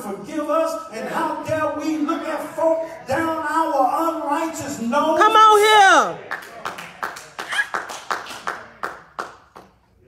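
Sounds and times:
people clapping: 6.0s - 10.0s.

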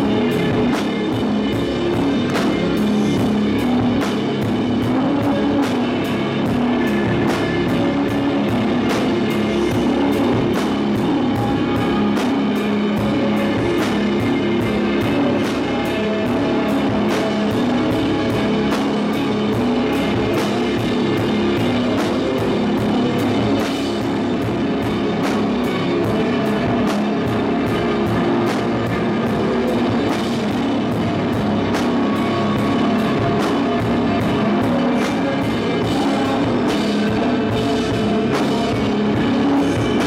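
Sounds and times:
drum kit beat: 0.0s - 40.0s
electric guitar and bass: 0.0s - 40.0s.

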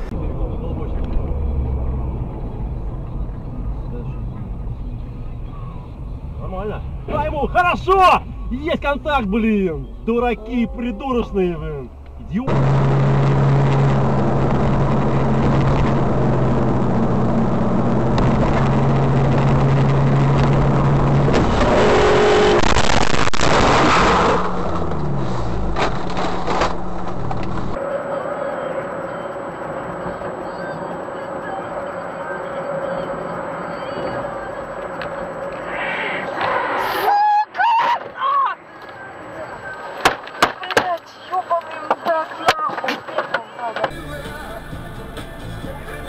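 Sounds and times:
car engine and road drone: 0.0s - 37.6s, 38.6s - 46.0s
in-cabin car hum: 0.0s - 46.0s
car crash: 12.4s - 27.8s, 32.2s - 44.2s.

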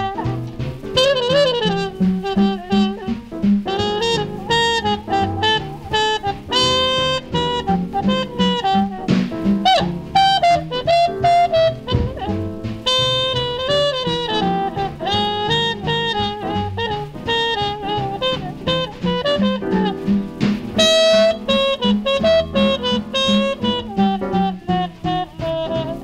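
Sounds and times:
bass: 0.0s - 26.0s
drums: 0.0s - 26.0s
tenor saxophone melody: 0.0s - 26.0s.

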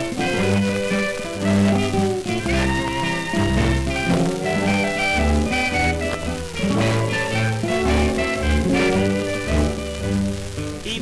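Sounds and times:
booming string bass notes: 0.0s - 10.8s
country jazz band playing: 0.0s - 11.0s.

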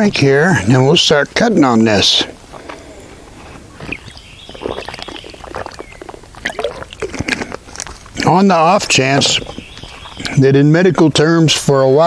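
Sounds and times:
person swallowing: 3.8s - 8.3s
liquid sloshing in container: 4.0s - 8.0s.

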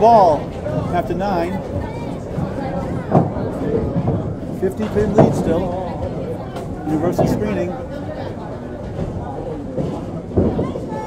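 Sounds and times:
background talk: 0.0s - 11.0s
bowling balls rolling on lanes: 0.0s - 11.0s.

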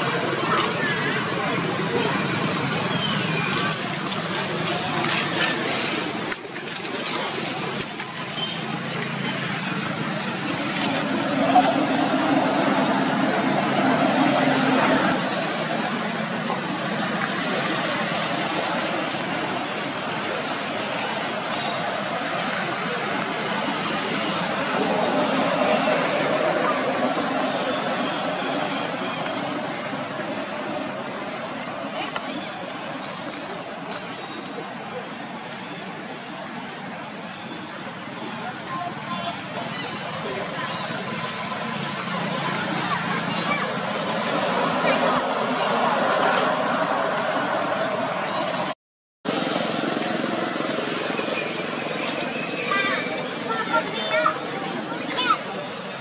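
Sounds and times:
indistinct voices: 0.0s - 56.0s
outdoor background noise: 0.0s - 56.0s.

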